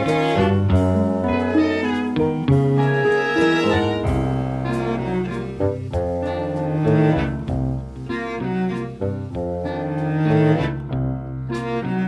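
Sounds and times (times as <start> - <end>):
chamber orchestra music: 0.0 - 12.0
low bowed strings: 0.0 - 12.0.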